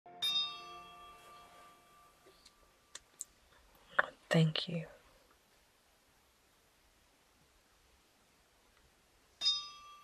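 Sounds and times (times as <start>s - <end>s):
bell-like chime ringing: 0.1s - 2.7s, 9.4s - 10.0s.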